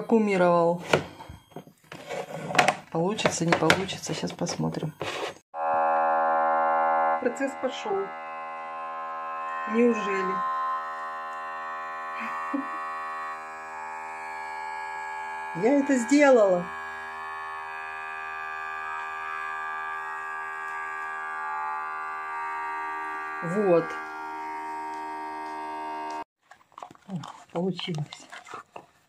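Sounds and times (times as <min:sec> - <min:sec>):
vacuum sealer pump humming: 0:05.7 - 0:26.3.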